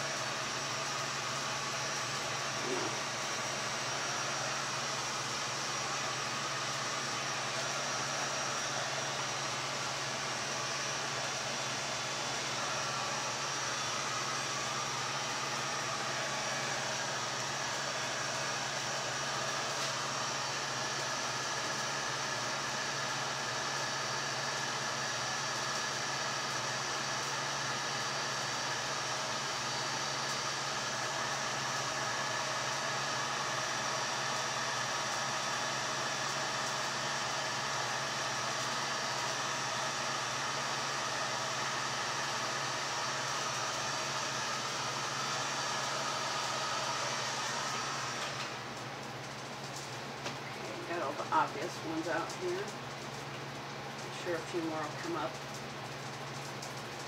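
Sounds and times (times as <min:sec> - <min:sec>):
heat gun blowing: 0:00.0 - 0:48.8.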